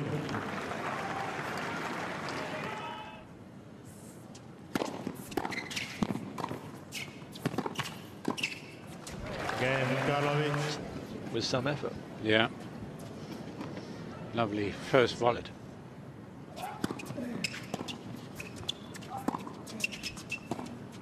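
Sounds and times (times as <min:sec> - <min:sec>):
crowd cheering and applauding: 0:00.0 - 0:03.0, 0:09.2 - 0:10.8
shoes squeaking on court: 0:04.3 - 0:09.2, 0:16.7 - 0:21.0.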